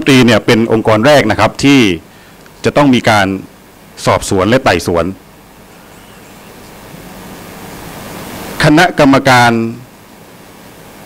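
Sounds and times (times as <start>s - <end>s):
man speaking into microphones: 0.0s - 2.0s, 2.6s - 5.2s, 8.6s - 9.9s
steady hiss: 0.0s - 11.0s.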